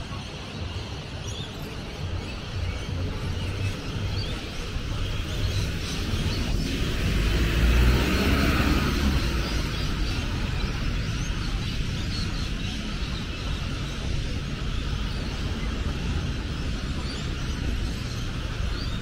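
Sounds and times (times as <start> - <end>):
cars driving past: 2.6 - 19.0
vehicle passing close: 4.7 - 11.8.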